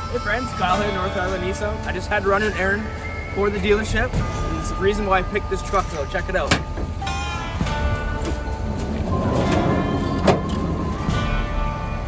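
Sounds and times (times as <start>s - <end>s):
background music: 0.0s - 12.0s
cargo tray rolling rumble: 0.0s - 12.0s.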